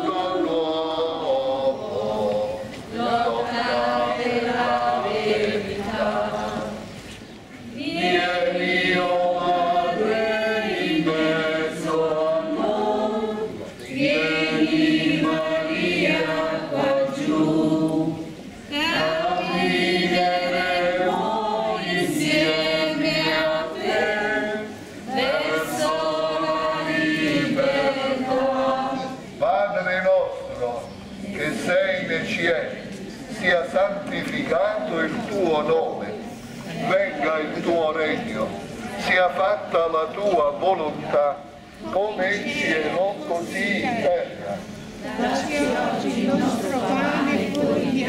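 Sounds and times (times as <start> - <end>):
group singing a hymn: 0.0 - 48.0.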